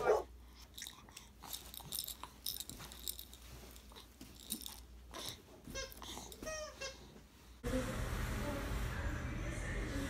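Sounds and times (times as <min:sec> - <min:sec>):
faint small clicks and rustles: 0:00.6 - 0:05.3.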